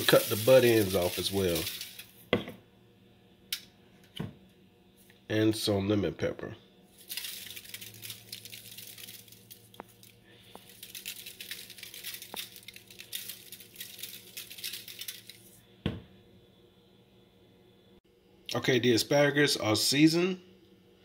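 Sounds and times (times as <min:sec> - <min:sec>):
plastic shaker jar shaking: 0:00.0 - 0:02.2, 0:07.0 - 0:15.6.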